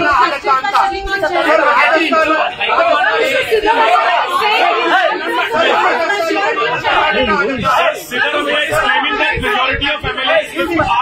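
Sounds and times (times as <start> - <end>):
overlapping voices talking: 0.0 - 11.0.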